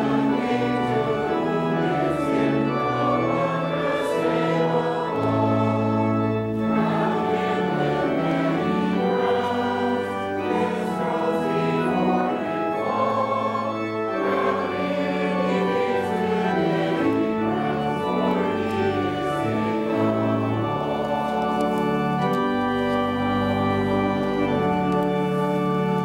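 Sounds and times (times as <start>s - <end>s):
choir singing a hymn: 0.0s - 26.0s
organ accompaniment: 0.0s - 26.0s.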